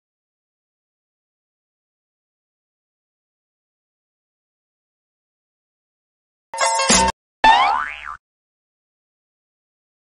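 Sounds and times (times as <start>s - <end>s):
cartoon boing sound effect: 7.4s - 8.2s.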